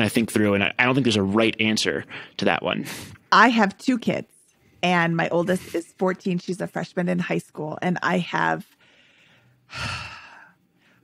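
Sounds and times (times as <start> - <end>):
woman sighing: 9.7 - 10.6.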